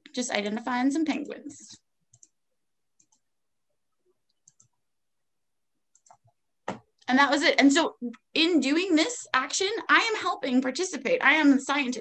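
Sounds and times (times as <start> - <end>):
computer mouse clicks: 2.1 - 2.4, 3.0 - 3.3, 4.2 - 4.8, 5.9 - 7.1.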